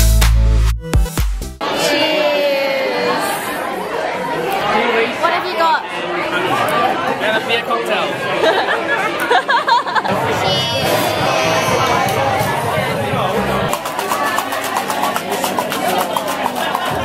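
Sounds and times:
crowd of people talking: 1.6 - 17.0.

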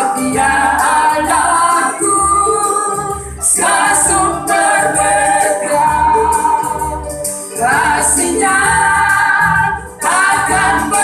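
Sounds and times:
keyboard accompaniment: 0.0 - 11.0
women singing in unison: 0.0 - 11.0.

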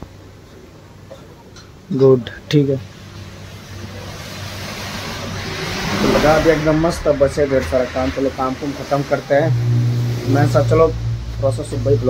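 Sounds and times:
vehicle approaching: 2.8 - 12.0.

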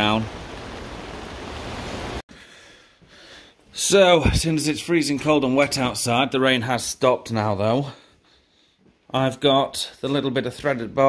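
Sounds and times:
heavy rain on tent fabric: 0.0 - 2.2.

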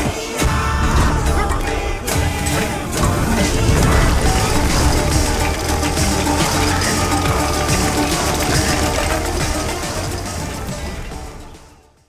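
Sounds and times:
dense film soundtrack music: 0.0 - 12.0.

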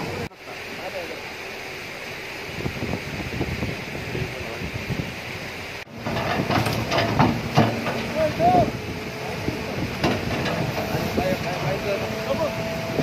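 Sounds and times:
rushing hiss of wind or water: 0.0 - 13.0
excavator diesel engine running: 5.9 - 13.0
irregular knocks and scrapes: 6.0 - 8.2, 9.9 - 11.8.

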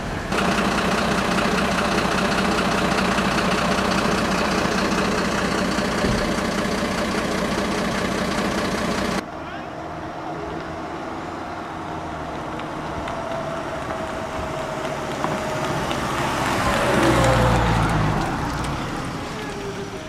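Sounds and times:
diesel engine idling: 0.0 - 20.0
quieter vehicle rumble: 0.0 - 20.0.

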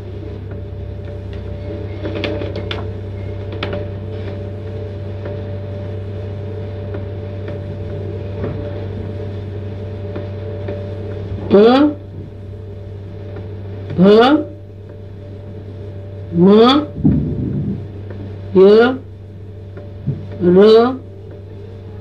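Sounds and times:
electrical hum and hiss: 0.0 - 22.0.

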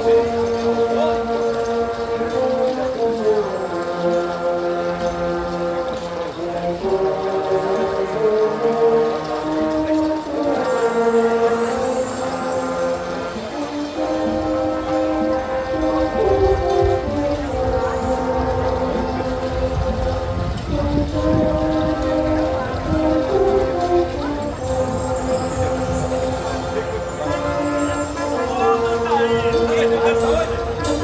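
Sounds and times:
brass band playing sustained chords: 0.0 - 31.0.

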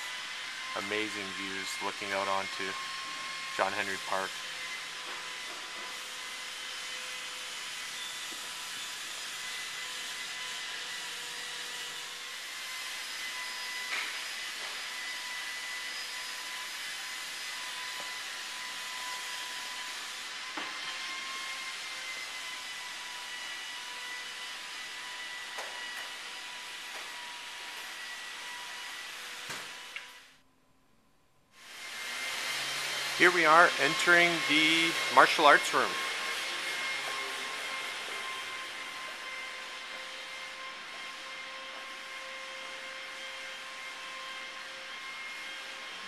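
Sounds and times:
blower machine whine: 31.7 - 42.4.

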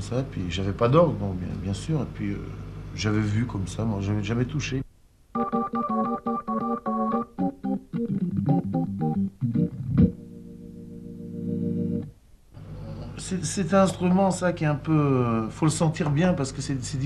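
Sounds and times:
organ playing jazz: 5.4 - 12.1.

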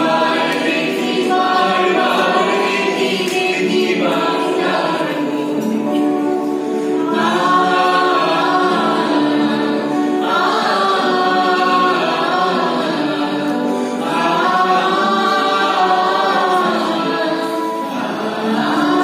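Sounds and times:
acoustic guitars: 0.0 - 19.0
group singing in chorus: 0.0 - 19.0.

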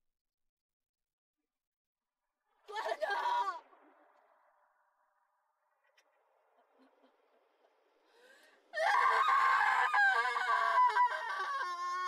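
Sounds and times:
woman screaming: 2.7 - 3.6, 8.8 - 12.0.

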